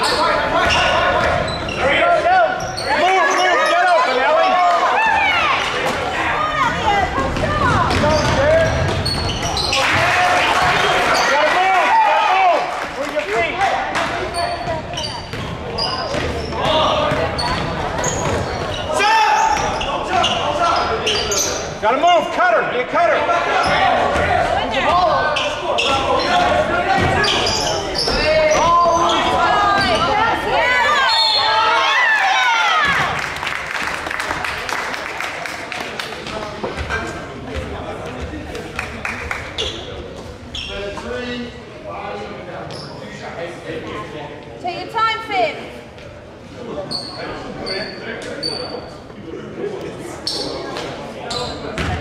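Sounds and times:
sneakers squeaking: 0:00.0 - 0:05.8, 0:06.4 - 0:10.0, 0:10.7 - 0:11.4, 0:14.0 - 0:21.8, 0:23.6 - 0:31.8, 0:39.5 - 0:41.3, 0:42.6 - 0:43.2, 0:46.8 - 0:49.2, 0:50.1 - 0:52.0.

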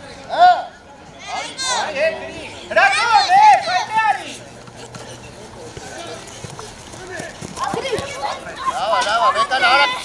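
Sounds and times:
children calling out: 0:07.6 - 0:10.0.

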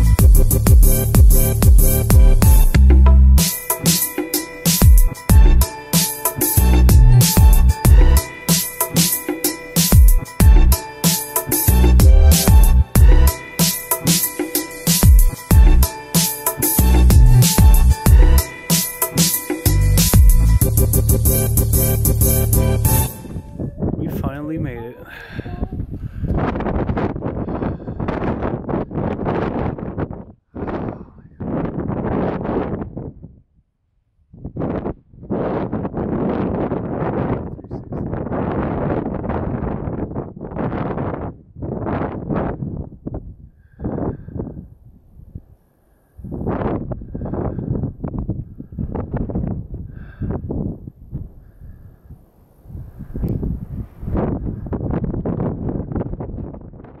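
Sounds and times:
strong wind buffeting microphone: 0:22.9 - 0:33.6, 0:34.2 - 0:57.0.

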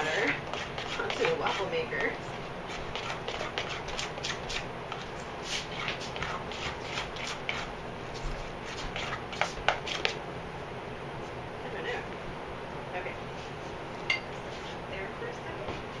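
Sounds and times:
spoon scraping batter in bowl: 0:00.0 - 0:07.7, 0:08.6 - 0:10.2.

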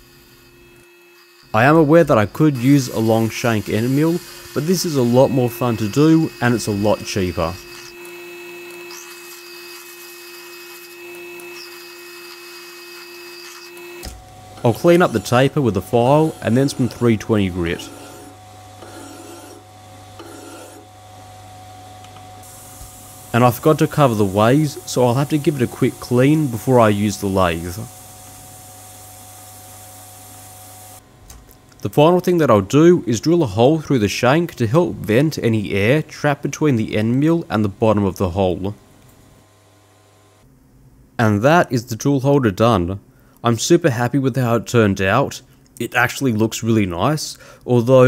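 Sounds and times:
lathe humming: 0:00.0 - 0:31.0
abrasive paper hissing on metal: 0:22.4 - 0:31.0.

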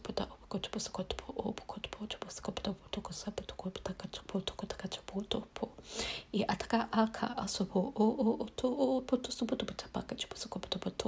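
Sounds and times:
person vocalizing rapid syllables: 0:00.0 - 0:05.8, 0:06.4 - 0:11.0.

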